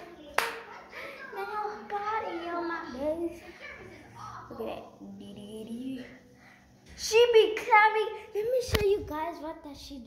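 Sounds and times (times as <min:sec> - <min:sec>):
sharp hand clap: 0:00.3 - 0:00.7.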